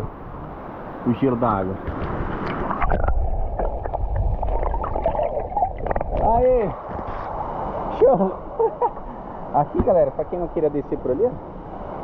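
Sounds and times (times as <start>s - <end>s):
water sloshing and gurgling: 1.8s - 10.4s.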